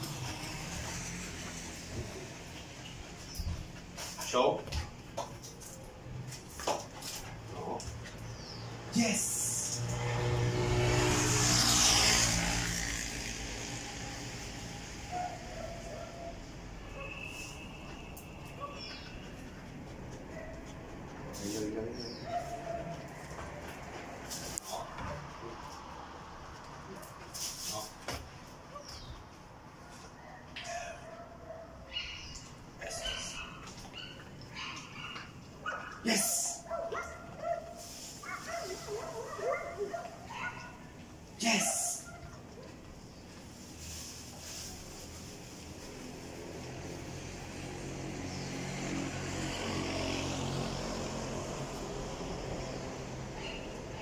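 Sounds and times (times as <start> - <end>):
motor vehicle passing: 0.0 - 54.0.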